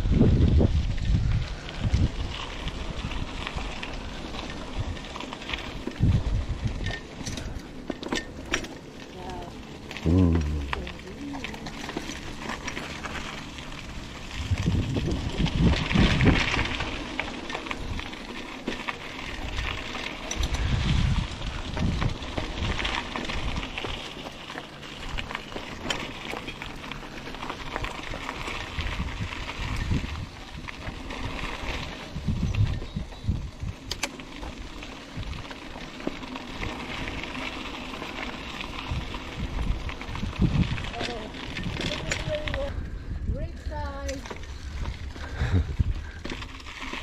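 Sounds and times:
wind gusting on microphone: 0:00.0 - 0:07.0, 0:13.8 - 0:17.2, 0:19.2 - 0:23.9, 0:28.4 - 0:33.9, 0:38.4 - 0:46.6
bike rattles and clicks: 0:00.0 - 0:47.0
tyres crunching over gravelly dirt: 0:00.0 - 0:47.0.

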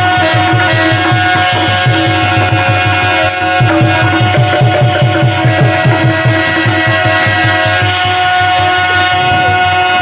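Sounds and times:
reed instrument holding notes: 0:00.0 - 0:07.9
fast hand drum rhythm: 0:03.6 - 0:07.7.

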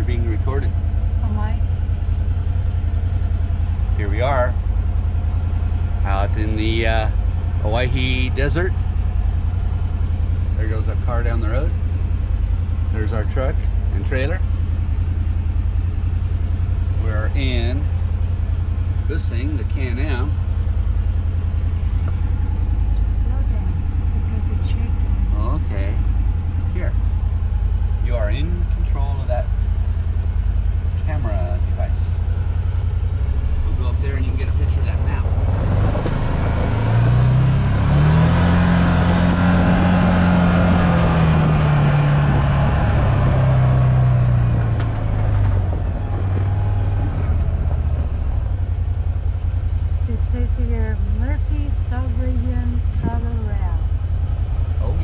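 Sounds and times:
vehicle engine idling and revving: 0:00.0 - 0:55.0.

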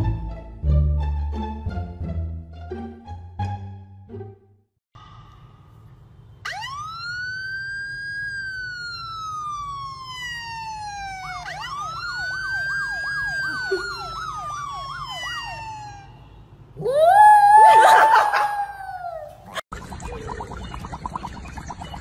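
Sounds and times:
police siren wailing: 0:06.4 - 0:19.3
siren yelp sweeps: 0:06.4 - 0:19.4.

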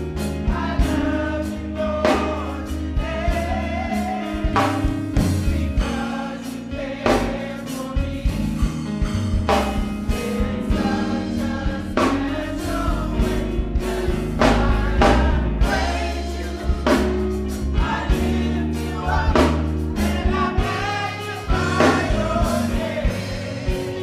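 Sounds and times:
choir singing gospel: 0:00.0 - 0:24.0
instrumental accompaniment with bass: 0:00.0 - 0:24.0
sharp beat: 0:08.6 - 0:24.0.

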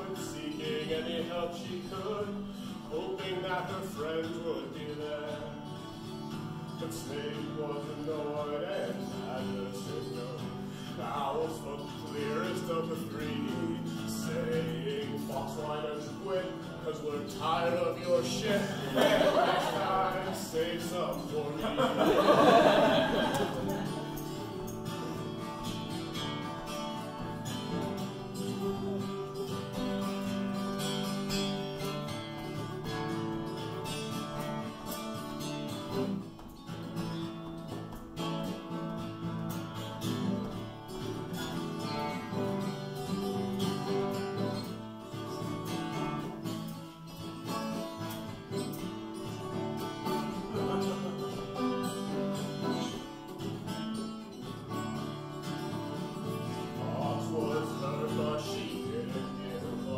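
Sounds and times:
solo acoustic guitar: 0:00.0 - 0:59.9.

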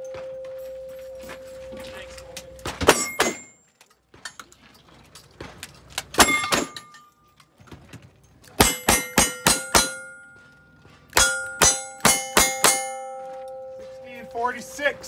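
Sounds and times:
bullets clanging on steel: 0:00.0 - 0:15.0.

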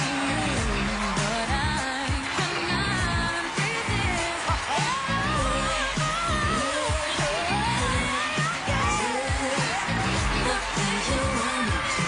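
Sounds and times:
pop song over sound system: 0:00.0 - 0:12.0.

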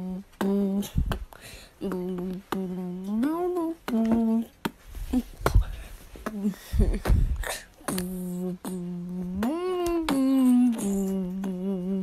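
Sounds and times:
person humming a tune: 0:00.0 - 0:12.0.

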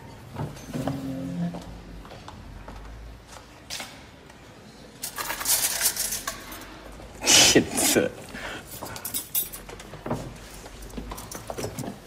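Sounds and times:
metal spoons clinking: 0:09.0 - 0:09.7.

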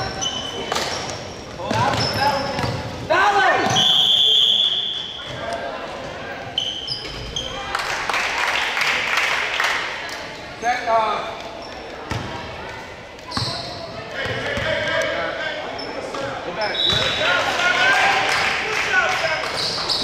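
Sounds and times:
sneaker squeaks: 0:00.0 - 0:05.5, 0:06.4 - 0:07.7, 0:10.4 - 0:12.4, 0:13.2 - 0:17.3, 0:19.5 - 0:20.0
spectators' voices echoing: 0:00.0 - 0:06.6, 0:07.3 - 0:20.0.

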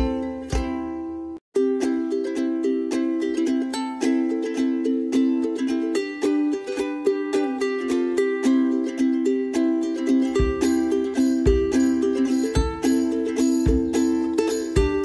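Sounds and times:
plucked string tune: 0:00.0 - 0:15.0.

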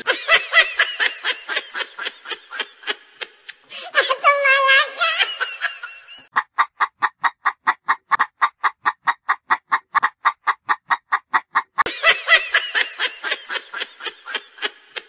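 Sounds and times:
cartoon chicken clucking: 0:07.8 - 0:11.9.

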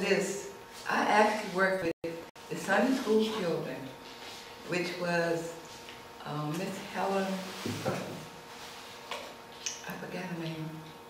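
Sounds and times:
woman speaking softly: 0:02.5 - 0:03.9, 0:09.8 - 0:10.8.

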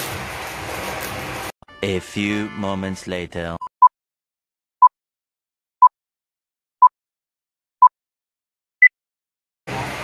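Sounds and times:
narrator speaking: 0:01.8 - 0:03.7.

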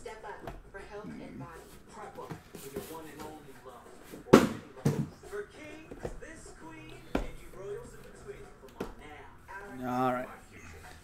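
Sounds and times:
cardboard boxes thumping on table: 0:04.3 - 0:05.1.

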